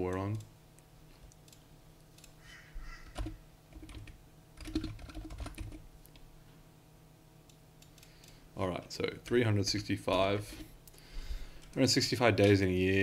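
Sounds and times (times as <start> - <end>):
faint low hum: 0.0 - 13.0
keyboard typing: 3.1 - 6.2.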